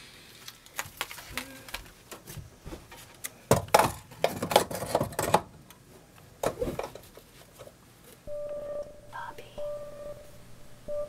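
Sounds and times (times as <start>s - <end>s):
electronic beep: 8.3s - 11.0s.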